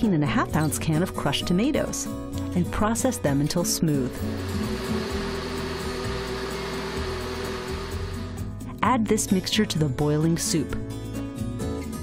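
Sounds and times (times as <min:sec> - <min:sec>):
low background music: 0:00.0 - 0:12.0
electric blender whirring: 0:04.1 - 0:08.5.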